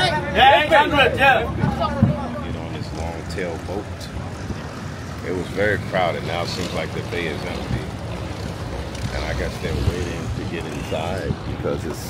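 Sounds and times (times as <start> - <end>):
man talking: 0.0 - 4.5, 5.2 - 8.1, 9.0 - 12.0.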